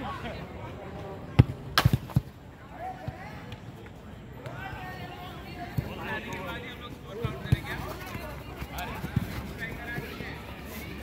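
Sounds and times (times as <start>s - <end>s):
players' voices: 0.0s - 11.0s
football kicked and bouncing: 7.1s - 10.3s.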